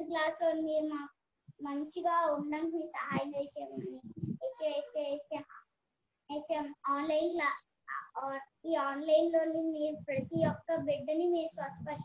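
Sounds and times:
child singing a prayer: 1.7 - 5.4, 6.3 - 12.0.

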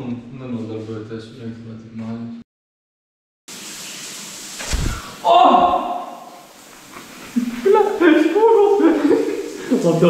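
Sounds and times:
steady rushing hiss: 4.5 - 5.2
dull low thump: 4.6 - 5.2.

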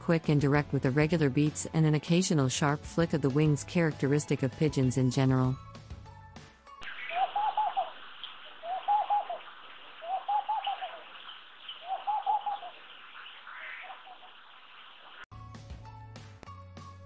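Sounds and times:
dove bubbling coo: 6.8 - 15.2.

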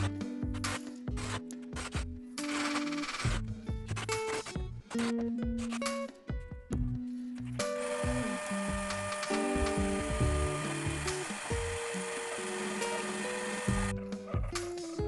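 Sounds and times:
background music: 0.0 - 15.0
shop vacuum running: 7.6 - 13.9.

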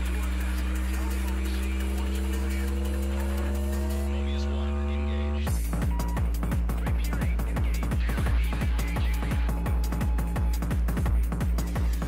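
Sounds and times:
deep bass drone: 0.0 - 12.0.

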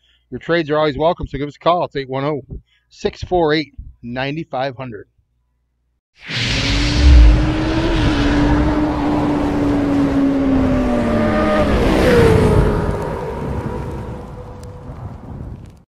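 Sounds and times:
loud low boom: 6.3 - 9.1
motorcycle engine revving: 6.7 - 12.8.

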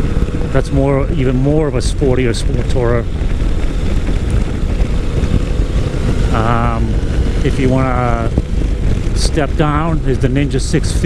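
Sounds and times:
motorcycle engine running: 0.0 - 11.0
wind buffeting microphone: 0.0 - 11.0.

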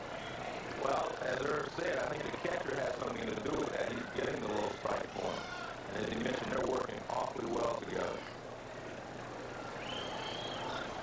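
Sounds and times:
raised voices: 0.0 - 8.4
crowd hum: 0.0 - 11.0.

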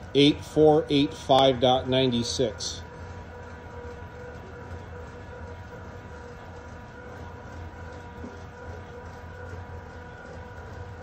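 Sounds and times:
motor humming with faint whine: 0.0 - 11.0.

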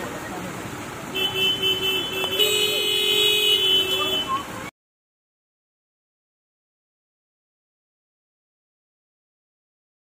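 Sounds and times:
street noise: 0.0 - 4.7
vehicle horn long blast: 1.1 - 4.3.

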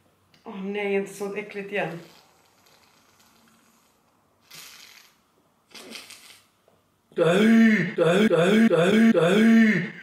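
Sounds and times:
sharp sniff through a straw: 3.7 - 6.5.

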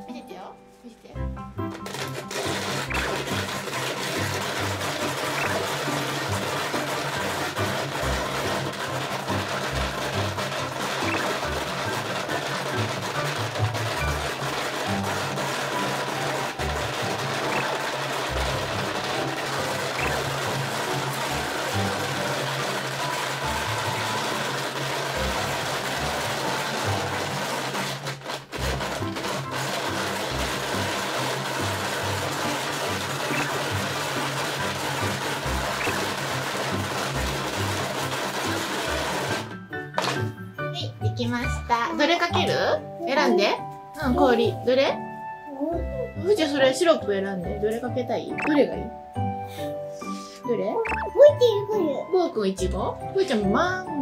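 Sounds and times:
background music: 0.0 - 54.0
ice shaving machine grinding: 1.4 - 40.6, 48.4 - 52.0.

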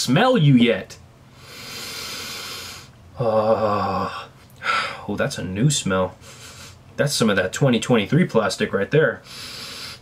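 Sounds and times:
man sniffing: 1.4 - 3.0, 6.2 - 6.8, 9.2 - 10.0.

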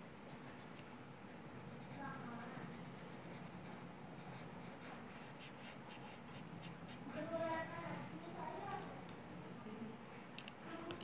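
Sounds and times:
pen scratching on paper: 0.0 - 0.8, 1.6 - 7.7
low room hum: 0.0 - 11.0.

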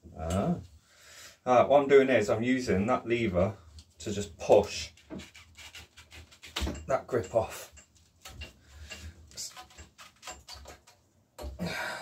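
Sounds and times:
rubber grip rubbing scrape: 4.6 - 6.7.

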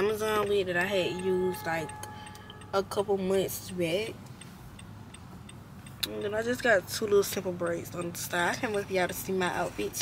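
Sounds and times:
low car hum: 0.0 - 10.0
turn signal ticking: 0.0 - 10.0.

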